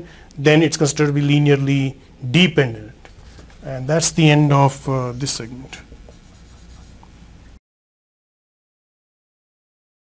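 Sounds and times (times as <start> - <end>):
low room hum: 0.0 - 7.6
marker scratching on whiteboard: 5.0 - 7.1.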